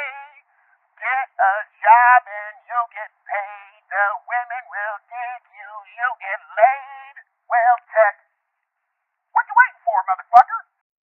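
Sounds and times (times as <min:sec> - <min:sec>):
high-pitched voice singing: 0:00.0 - 0:00.4.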